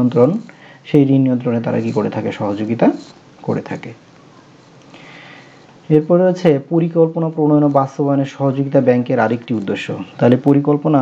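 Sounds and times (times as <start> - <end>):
low background hiss: 0.0 - 11.0
person speaking: 0.0 - 11.0.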